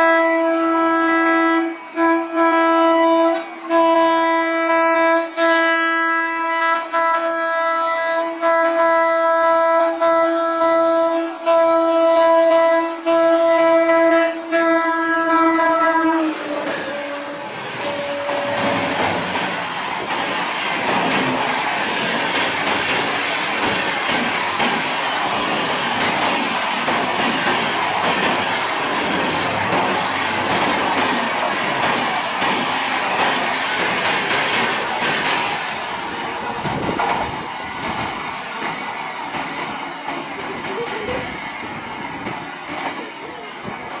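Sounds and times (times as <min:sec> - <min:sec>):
locomotive horn blast: 0:00.0 - 0:19.4
train coaches rushing and clattering: 0:00.0 - 0:44.0.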